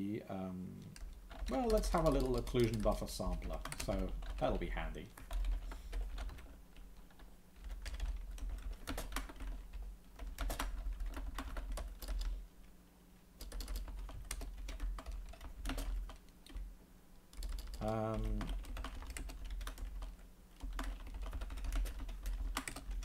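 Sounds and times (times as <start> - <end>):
typing on computer keyboard: 0.9 - 4.6, 5.2 - 12.3, 13.4 - 16.6, 17.3 - 23.0.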